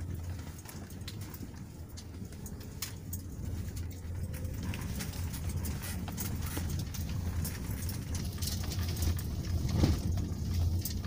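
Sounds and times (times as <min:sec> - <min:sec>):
light clicks and rattles: 0:00.0 - 0:11.0
vehicle engine humming: 0:00.0 - 0:11.0.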